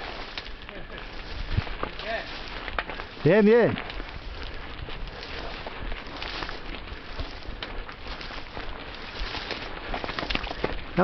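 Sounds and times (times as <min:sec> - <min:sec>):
bike ticks and rattles: 0:00.0 - 0:11.0
brush scraping against bike: 0:00.0 - 0:11.0.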